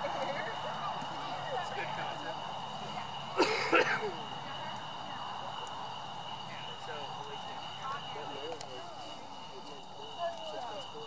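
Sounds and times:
horse hooves on dirt: 0.0s - 11.0s
people talking indistinctly: 0.0s - 11.0s.

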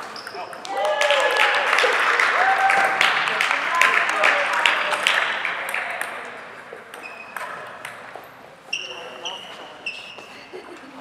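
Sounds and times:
sneakers squeaking on floor: 0.0s - 0.6s, 6.7s - 10.6s
applause: 0.6s - 6.2s.

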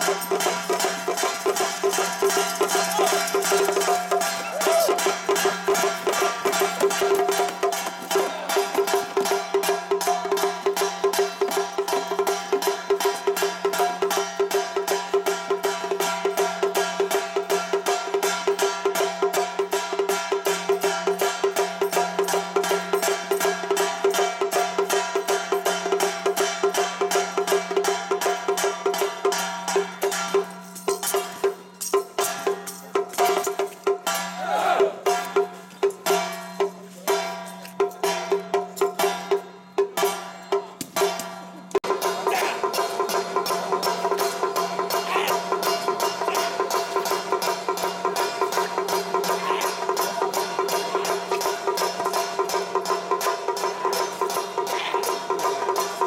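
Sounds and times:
drum gong and cymbals rhythm: 0.0s - 56.0s.

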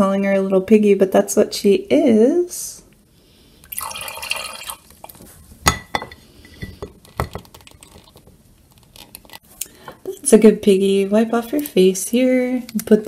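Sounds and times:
water dripping into a glass: 3.7s - 4.8s.

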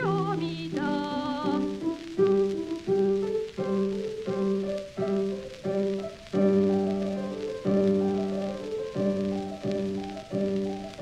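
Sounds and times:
woman singing with vibrato: 0.0s - 1.8s
piano chords: 0.0s - 11.0s.

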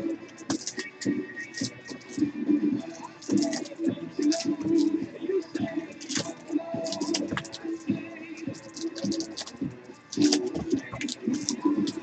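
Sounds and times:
background music: 0.0s - 12.0s
trading cards clicking and sliding: 0.3s - 5.0s, 5.6s - 12.0s.

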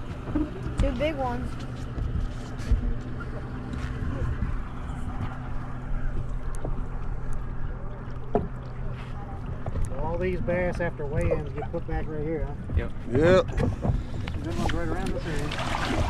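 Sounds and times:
low engine hum: 0.0s - 16.0s
water noise: 0.0s - 16.0s
wind: 0.0s - 16.0s.

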